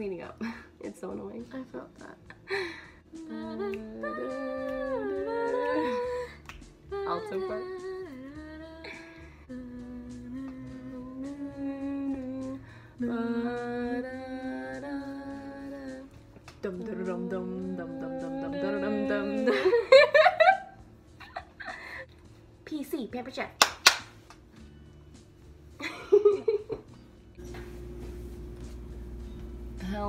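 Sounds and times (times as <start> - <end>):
woman humming: 3.1 - 6.4, 16.7 - 19.8.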